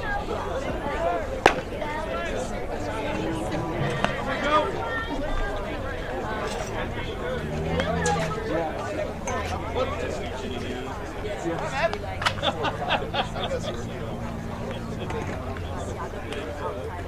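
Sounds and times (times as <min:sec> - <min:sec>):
chatter of many voices: 0:00.0 - 0:17.0
sharp crack of bat: 0:01.5 - 0:01.8.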